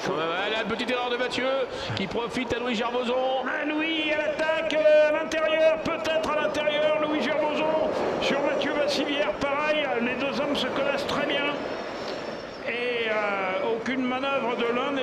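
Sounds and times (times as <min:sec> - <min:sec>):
continuous speech: 0:00.0 - 0:11.9, 0:12.6 - 0:15.0.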